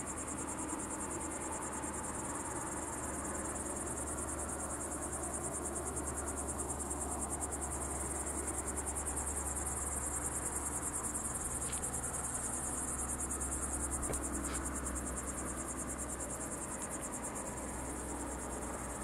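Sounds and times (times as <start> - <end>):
crickets chirring: 0.0 - 19.0.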